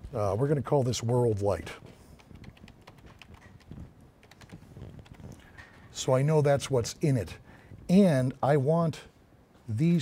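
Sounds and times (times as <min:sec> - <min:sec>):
computer keyboard typing: 0:02.2 - 0:05.6.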